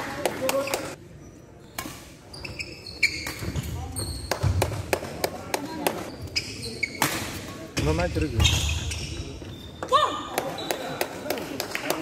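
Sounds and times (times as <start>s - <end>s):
shoes squeaking on court floor: 0.5s - 4.9s, 5.6s - 11.2s.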